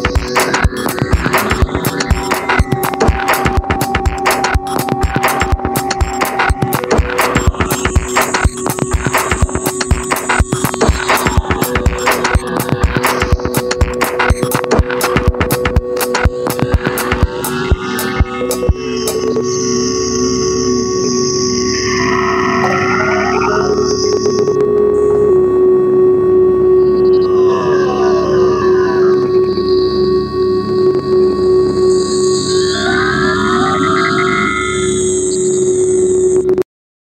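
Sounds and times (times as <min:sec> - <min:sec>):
held synth drone: 0:00.0 - 0:36.4
sweeping synth tones: 0:00.0 - 0:36.4.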